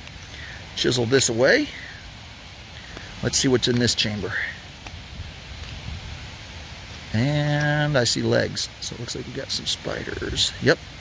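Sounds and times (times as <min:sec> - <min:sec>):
quiet rustling: 0:00.0 - 0:10.6
low background noise: 0:00.0 - 0:11.0.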